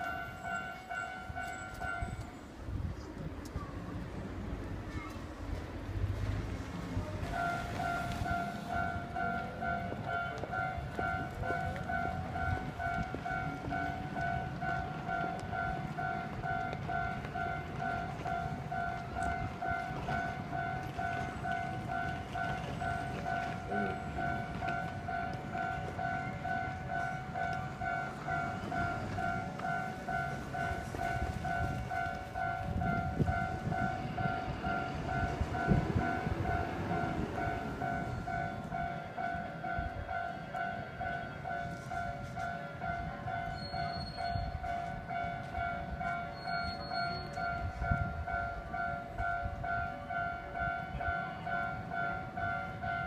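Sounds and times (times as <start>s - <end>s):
level crossing warning bell: 0.0s - 2.7s, 6.6s - 53.0s
train rumbling: 0.0s - 53.0s.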